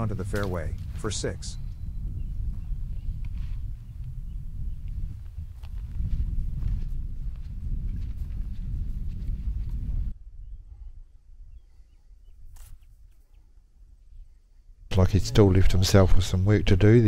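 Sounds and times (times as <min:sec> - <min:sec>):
wind rumbling on microphone: 0:00.0 - 0:17.0.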